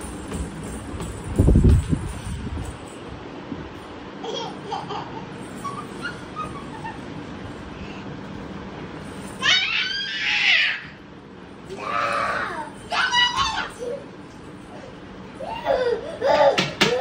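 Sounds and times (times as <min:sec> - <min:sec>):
young child laughing: 0:04.2 - 0:07.1.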